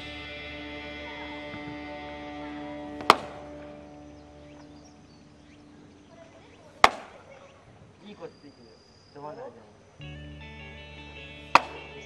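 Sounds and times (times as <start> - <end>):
background music with held chords: 0.0 - 6.0, 10.0 - 12.0
baseball smacking into mitt: 3.0 - 3.6, 6.8 - 7.2, 11.5 - 11.9.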